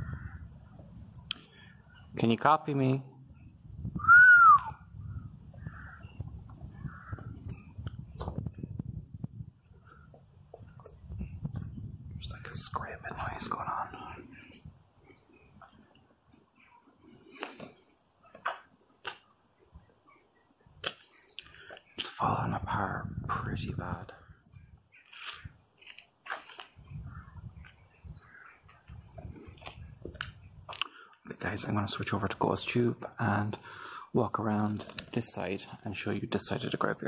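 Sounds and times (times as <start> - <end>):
wind rumble on microphone: 0.0 - 2.1, 3.2 - 16.0, 22.1 - 25.7, 26.6 - 30.8
man whistling rising and falling: 4.0 - 4.8.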